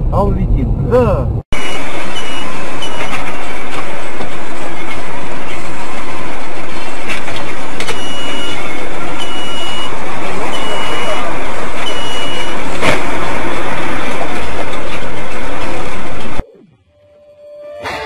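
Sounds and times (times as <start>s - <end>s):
distorted traffic noise: 0.0s - 18.0s
high beeps: 1.6s - 3.5s, 7.8s - 12.6s.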